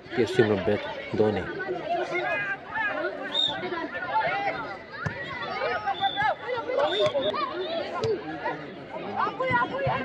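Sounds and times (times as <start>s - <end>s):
voices shouting and calling: 0.0s - 10.0s.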